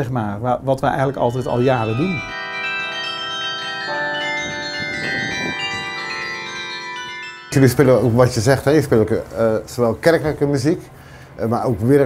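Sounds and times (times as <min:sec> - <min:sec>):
carillon bells playing melody: 0:00.9 - 0:09.3.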